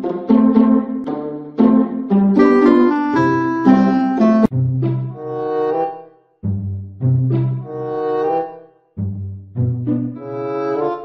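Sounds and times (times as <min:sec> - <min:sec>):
melody over bass notes: 0:02.4 - 0:04.5.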